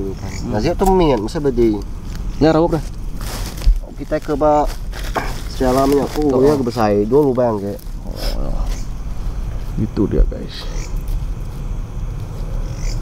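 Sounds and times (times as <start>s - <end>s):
man murmuring: 8.0s - 8.8s.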